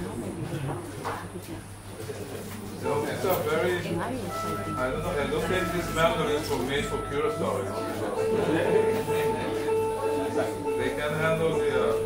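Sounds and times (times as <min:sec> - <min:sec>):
voices talking: 0:00.0 - 0:12.0
acoustic group playing: 0:02.6 - 0:12.0
held note: 0:04.0 - 0:12.0.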